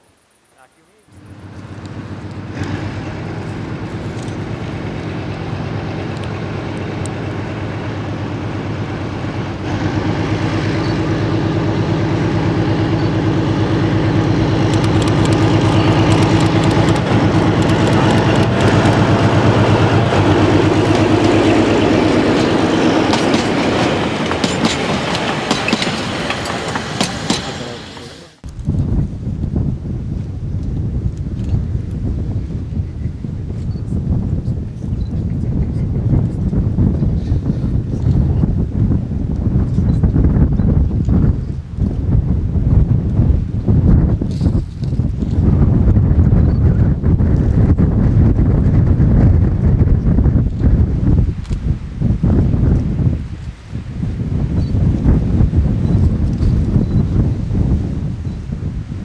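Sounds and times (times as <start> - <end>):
diesel locomotive engine drone: 1.0 - 59.0
train wheels clicking on rail joints: 1.5 - 28.1.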